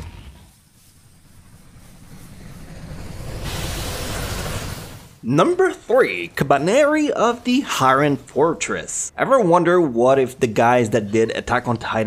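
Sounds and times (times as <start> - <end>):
low rumble: 0.0 - 5.2
loud hiss: 0.0 - 5.3.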